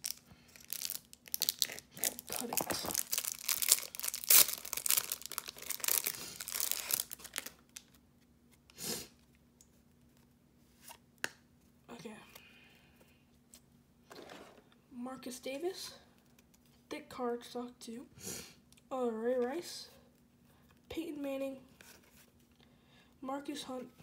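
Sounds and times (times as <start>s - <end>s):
plastic wrapper crinkling and tearing: 0.0s - 8.0s.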